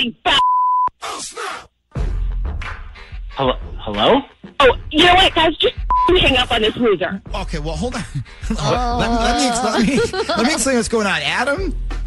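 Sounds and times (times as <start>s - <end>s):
electronic beep: 5.9s - 6.3s.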